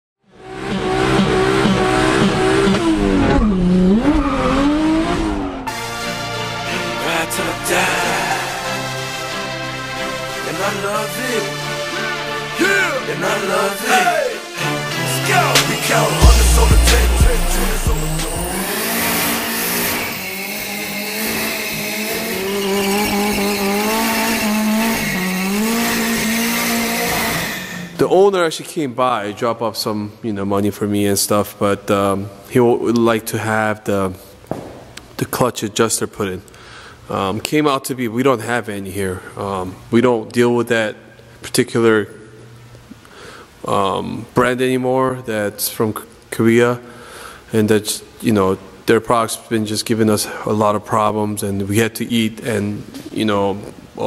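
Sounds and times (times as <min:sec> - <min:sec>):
music: 0:00.2 - 0:03.4, 0:05.5 - 0:20.6
car engine at full throttle: 0:00.4 - 0:05.7, 0:15.5 - 0:28.0
tyres squealing: 0:12.6 - 0:28.0.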